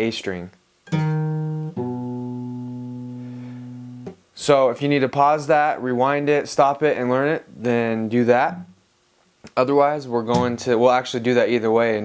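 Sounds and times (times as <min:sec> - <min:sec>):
fingerpicked acoustic guitar notes: 0:00.9 - 0:04.2.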